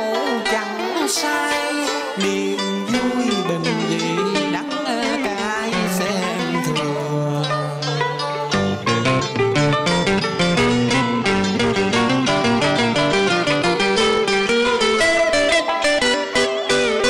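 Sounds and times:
plucked guitar playing fast notes: 0.0s - 17.0s
bass line: 3.0s - 17.0s.

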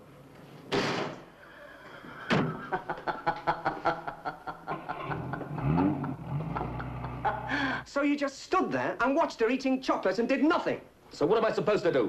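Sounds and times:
woman laughing: 2.6s - 7.8s.

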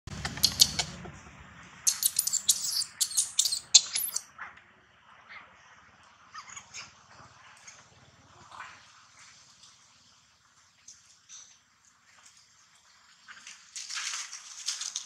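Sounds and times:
baby monkey screaming: 0.1s - 1.0s, 1.9s - 4.2s.

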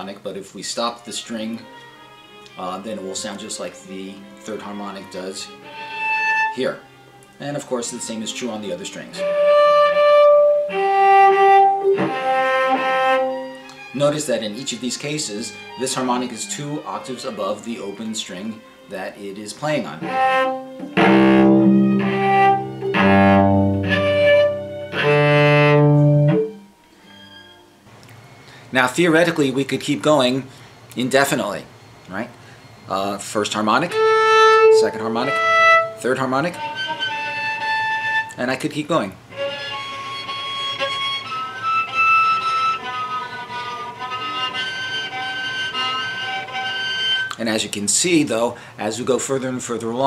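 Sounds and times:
cello bowed harmonics: 0.7s - 27.8s, 32.8s - 47.4s.

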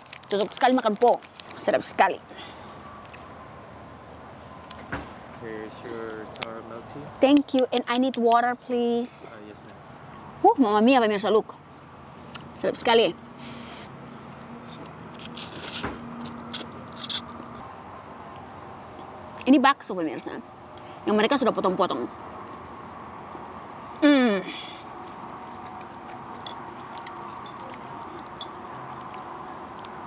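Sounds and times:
outdoor background noise: 0.0s - 30.0s
person chewing: 14.6s - 17.6s, 24.8s - 30.0s.

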